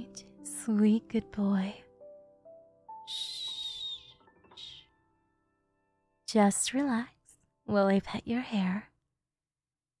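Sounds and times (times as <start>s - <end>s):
soft background music: 0.0s - 8.9s.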